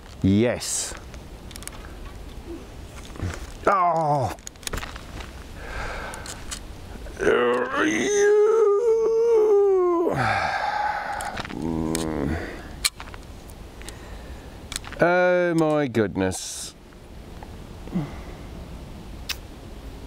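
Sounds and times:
man's drawn-out cry: 7.2s - 12.5s
man groaning: 7.2s - 12.7s.

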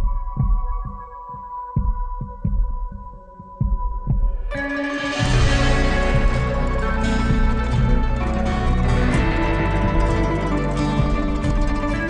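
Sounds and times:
low throbbing drum beats: 0.0s - 12.0s
held chord: 4.6s - 12.0s.

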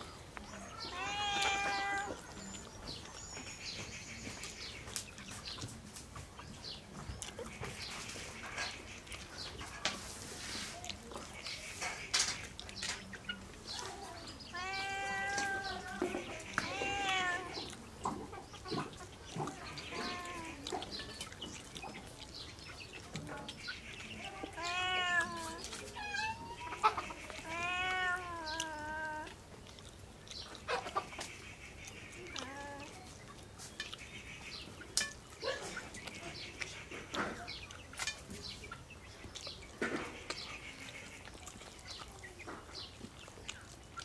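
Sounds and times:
chewing clicks and smacks: 4.4s - 9.6s, 10.8s - 14.0s, 15.8s - 24.2s, 27.2s - 44.0s
animal calling: 18.7s - 22.1s, 23.5s - 29.9s.

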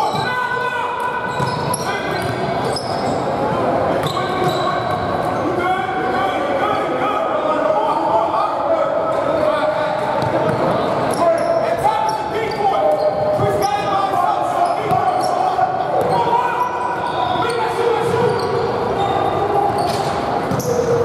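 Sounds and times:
players' voices echoing: 0.0s - 21.0s.

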